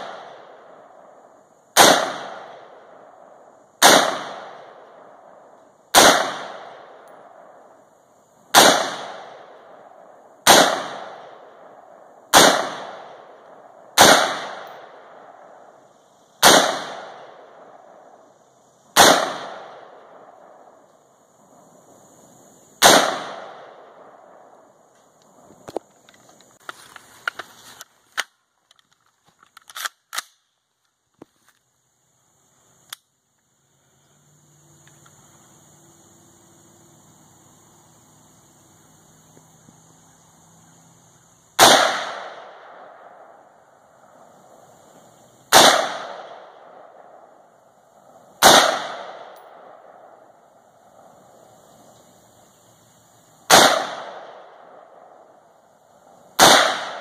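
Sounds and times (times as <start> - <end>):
rifle shots ringing out: 0.0 - 1.1, 1.8 - 3.2, 3.8 - 7.7, 8.5 - 15.6, 16.4 - 17.9, 19.0 - 20.6, 22.8 - 24.5, 41.6 - 43.4, 45.5 - 47.4, 48.4 - 50.2, 53.5 - 55.3, 56.4 - 57.0.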